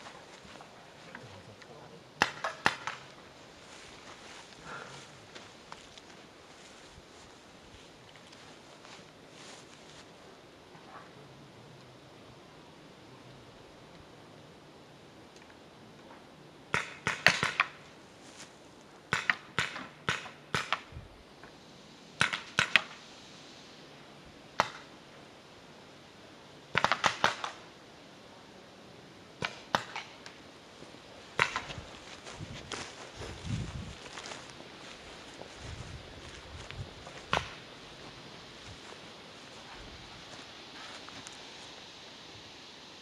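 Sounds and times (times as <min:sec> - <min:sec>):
paintball markers firing: 0:02.2 - 0:03.1, 0:26.8 - 0:27.6.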